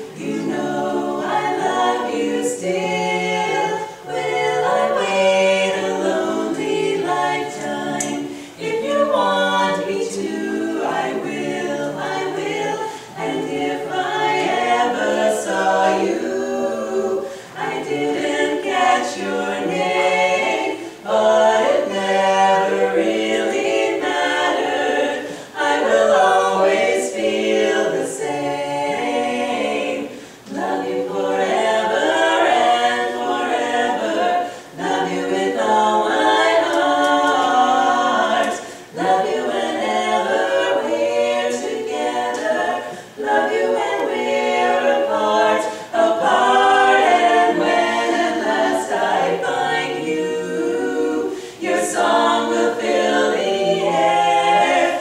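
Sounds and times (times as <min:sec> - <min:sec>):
women singing a cappella harmony: 0:00.0 - 0:55.0.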